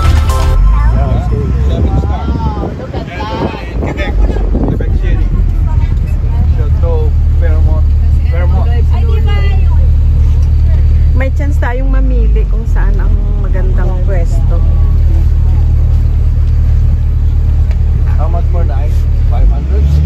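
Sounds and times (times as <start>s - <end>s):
people talking: 0.0s - 16.1s
bus engine low rumble: 0.0s - 20.0s.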